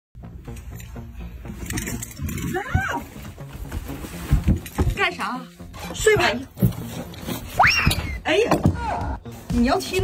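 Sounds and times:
light background music: 0:00.2 - 0:10.0.

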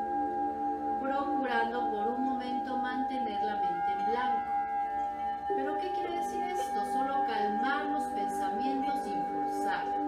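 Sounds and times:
singing bowl ringing: 0:00.0 - 0:10.0.

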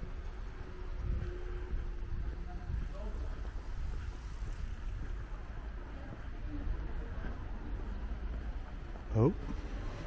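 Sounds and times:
low uneven rumble: 0:00.0 - 0:10.0.

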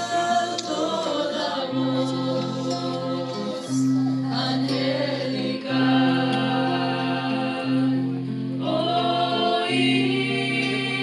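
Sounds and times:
acoustic guitar: 0:00.0 - 0:11.0
choir singing a slow carol: 0:00.0 - 0:11.0.

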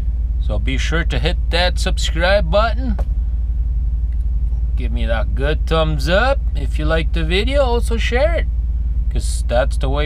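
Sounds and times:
truck engine idling: 0:00.0 - 0:10.0
man talking: 0:00.4 - 0:03.0, 0:04.8 - 0:10.0.

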